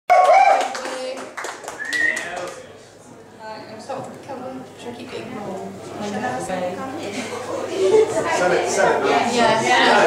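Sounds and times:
audience applause: 0:00.1 - 0:02.6.

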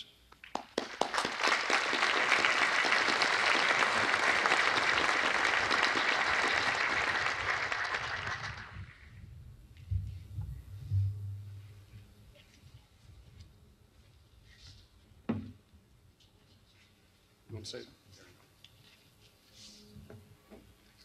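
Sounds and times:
audience applauding: 0:00.5 - 0:09.0.

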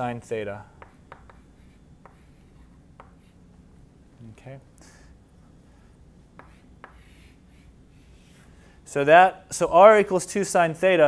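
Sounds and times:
chalk scratching on blackboard: 0:00.8 - 0:03.4, 0:06.3 - 0:08.5.

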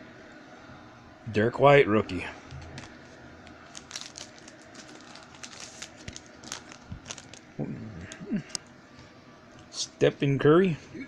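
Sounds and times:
cards and wrapper crinkling: 0:02.4 - 0:07.5.

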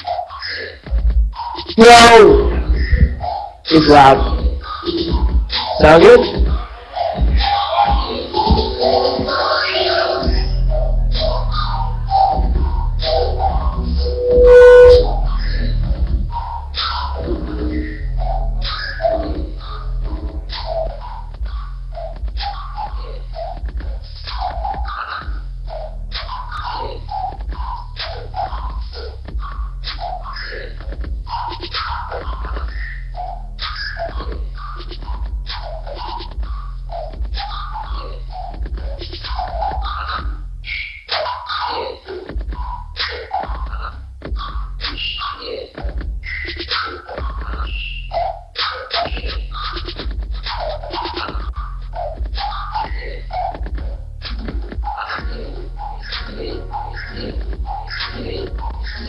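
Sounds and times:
choppy electronic beat: 0:00.0 - 0:59.0
deep bass line: 0:01.8 - 0:06.6, 0:10.2 - 0:40.7, 0:42.3 - 0:45.1, 0:49.3 - 0:59.0.

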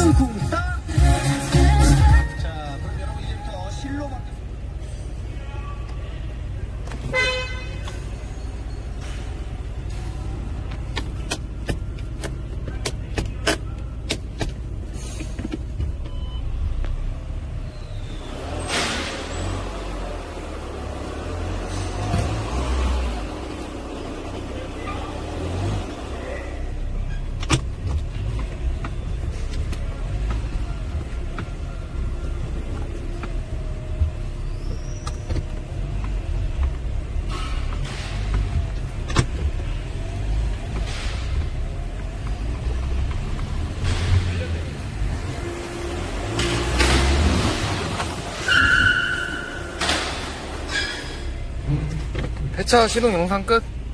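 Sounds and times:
diesel engine idling: 0:00.0 - 0:53.9
sharp clicks and knocks: 0:10.6 - 0:16.2, 0:32.6 - 0:44.4.

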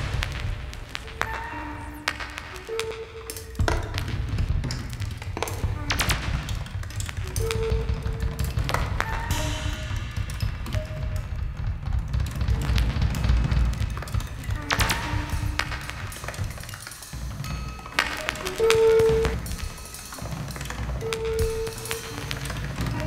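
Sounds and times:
drum rolls: 0:00.0 - 0:23.0
sharp percussion hits: 0:00.0 - 0:23.0
heavy low rumble: 0:03.6 - 0:23.0.

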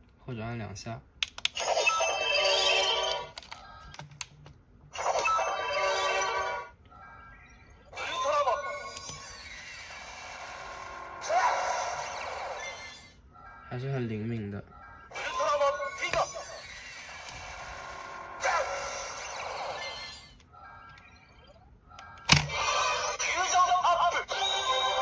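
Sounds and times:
toy electronic sound effects: 0:01.5 - 0:04.0, 0:04.9 - 0:14.0, 0:14.7 - 0:25.0.

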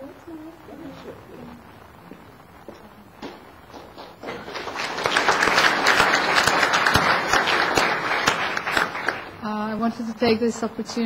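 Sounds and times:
audience applauding: 0:03.7 - 0:09.4.

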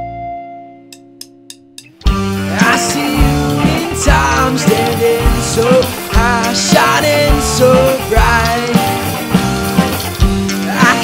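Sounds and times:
bass guitar: 0:00.0 - 0:11.0
electric guitars: 0:00.0 - 0:11.0
drum kit: 0:00.9 - 0:11.0.

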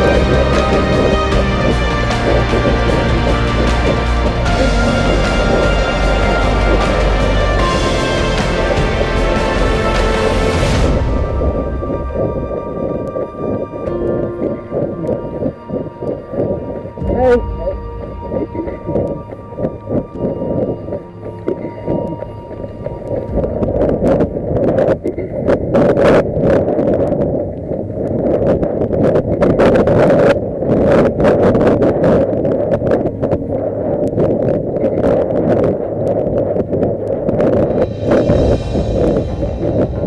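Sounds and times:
music: 0:00.0 - 0:40.0
wind buffeting microphone: 0:00.0 - 0:40.0.

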